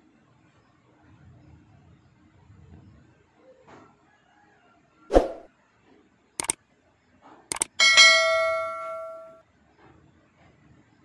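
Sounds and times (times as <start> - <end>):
sharp double click: 7.5 - 7.8
notification bell ding: 7.5 - 9.4.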